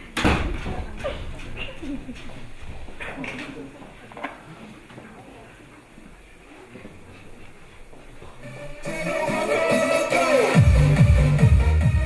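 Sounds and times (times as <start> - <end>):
faint voices: 0.0 - 10.6
electronic dance music: 8.4 - 12.0.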